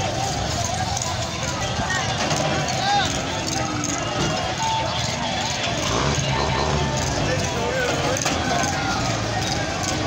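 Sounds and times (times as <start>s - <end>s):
many people talking: 0.0s - 10.0s
vehicle engine noise: 0.0s - 10.0s.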